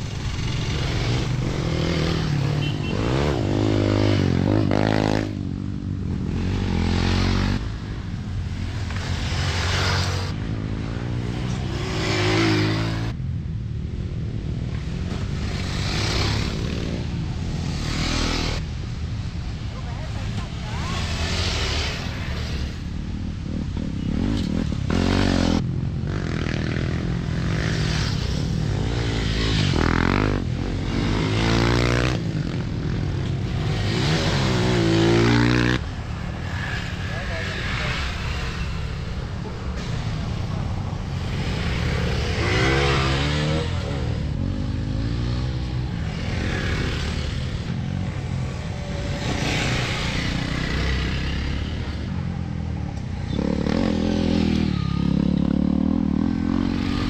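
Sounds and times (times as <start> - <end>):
off-road motorcycles revving past: 0.0 - 19.0, 19.8 - 57.0.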